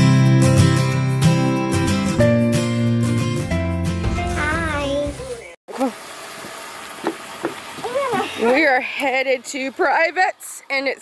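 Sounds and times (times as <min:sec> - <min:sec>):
background music: 0:00.0 - 0:05.5
outdoor background hiss: 0:05.7 - 0:11.0.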